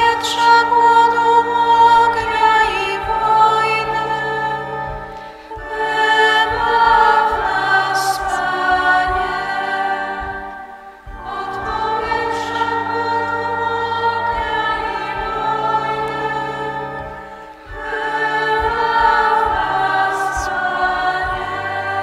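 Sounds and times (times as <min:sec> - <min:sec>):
choir singing a hymn: 0:00.0 - 0:22.0.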